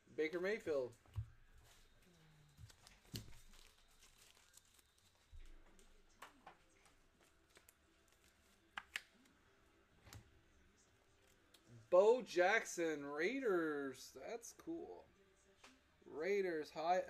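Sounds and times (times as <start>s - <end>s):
cards and wrappers rustling: 0.4s - 9.4s.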